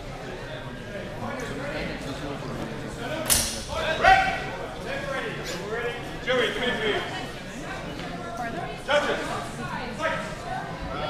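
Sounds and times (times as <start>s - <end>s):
voices echoing in a hall: 0.0s - 11.0s
sharp crack: 3.3s - 3.7s.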